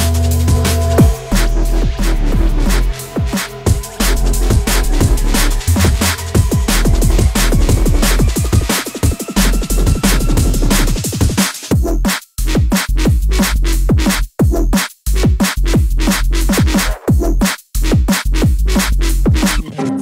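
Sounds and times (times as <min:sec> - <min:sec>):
drum and bass track: 0:00.0 - 0:20.0.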